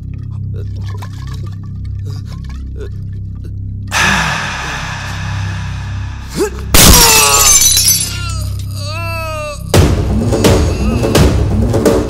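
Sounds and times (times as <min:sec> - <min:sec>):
dramatic film music: 0:00.0 - 0:07.3, 0:08.3 - 0:12.0
glass bottle shattering: 0:06.8 - 0:08.8.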